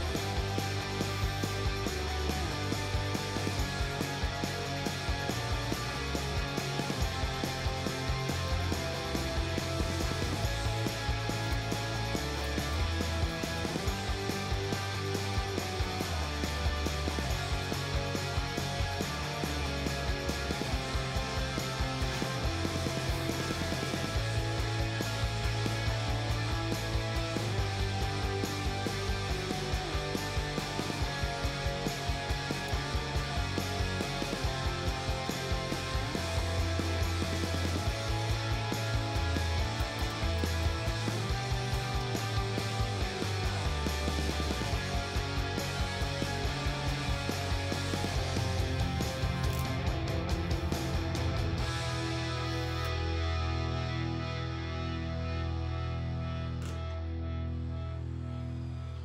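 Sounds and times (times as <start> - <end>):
background music with beat: 0.0 - 56.9.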